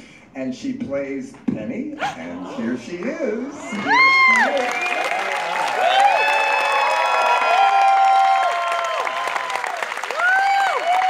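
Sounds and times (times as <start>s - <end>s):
people whooping and cheering: 3.6s - 11.0s
audience applauding: 3.7s - 11.0s.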